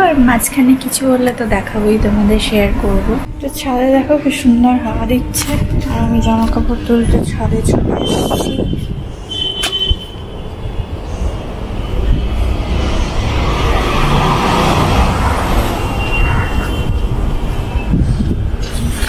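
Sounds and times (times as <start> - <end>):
broad rushing sound: 10.6 - 19.0.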